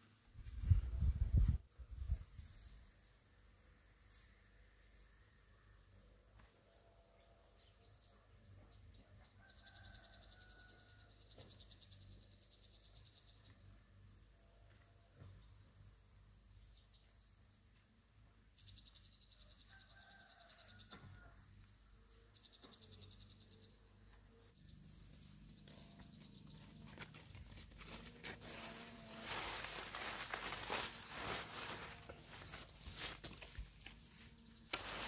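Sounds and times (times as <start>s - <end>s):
bird calls and chirps: 18.6s - 28.1s.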